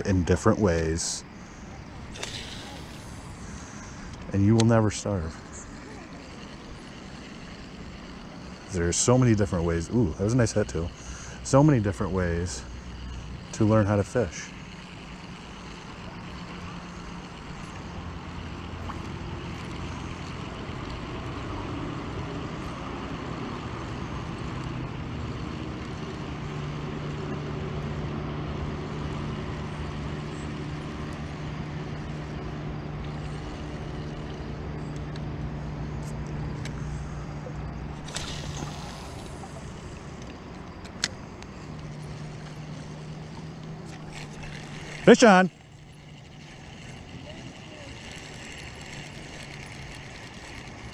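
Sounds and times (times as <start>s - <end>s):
distant engine drone: 0.0s - 50.9s
sharp click: 2.1s - 3.1s
short hiss: 2.1s - 4.2s, 38.0s - 40.2s.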